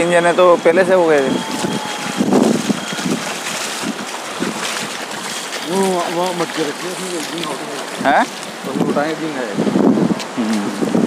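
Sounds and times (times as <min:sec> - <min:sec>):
small waves on sandy beach: 0:00.0 - 0:11.0
wind buffeting microphone: 0:00.0 - 0:11.0.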